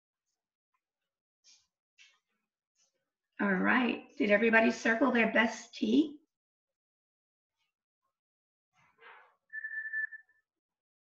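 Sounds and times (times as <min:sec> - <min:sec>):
high whistled note: 0:09.5 - 0:10.3.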